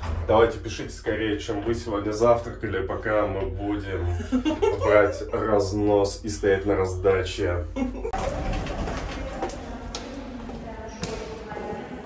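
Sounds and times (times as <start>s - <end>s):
indistinct voices in a hall: 8.1s - 12.0s
footsteps on stone floor: 8.2s - 12.0s.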